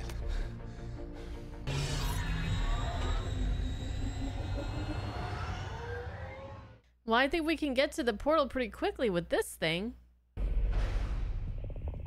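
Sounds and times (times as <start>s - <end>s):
film score: 0.0s - 7.4s, 10.4s - 12.0s
aircraft engine rumbling with whines: 2.6s - 6.8s.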